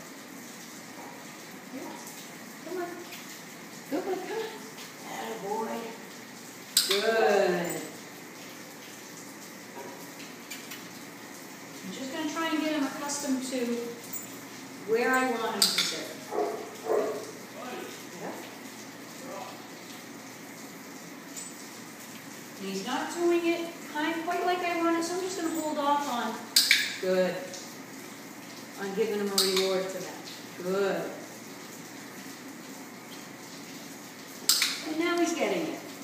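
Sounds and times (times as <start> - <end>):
room noise hiss: 0.0 - 36.0.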